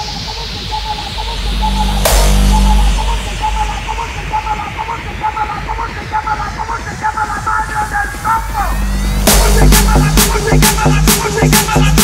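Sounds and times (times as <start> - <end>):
high synth notes: 0.0 - 5.4, 8.4 - 12.0.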